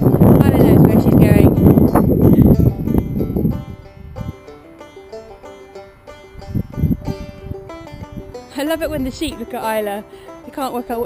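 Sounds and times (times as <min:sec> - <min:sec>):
plucked strings music: 0:00.0 - 0:11.0
wind buffeting microphone: 0:00.0 - 0:11.0.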